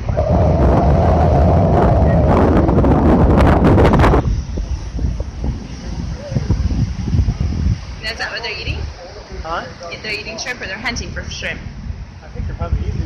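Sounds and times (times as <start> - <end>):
low rush of wind: 0.0 - 13.0
surf: 0.0 - 13.0
wind buffeting microphone: 0.0 - 13.0.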